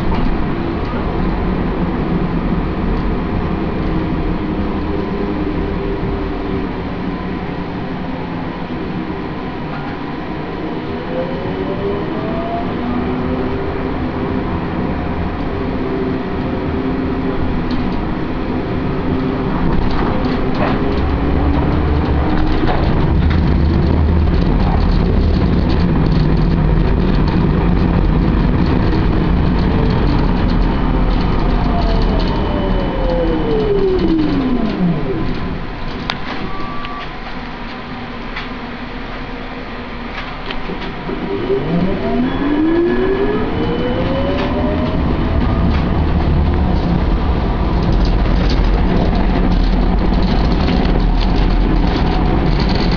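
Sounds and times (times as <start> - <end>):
tram motor whine: 0.0 - 52.9
tram running noise: 0.0 - 52.9.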